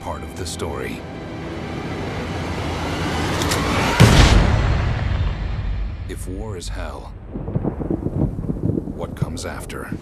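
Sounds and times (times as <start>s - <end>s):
rumbling noise: 2.0s - 10.0s.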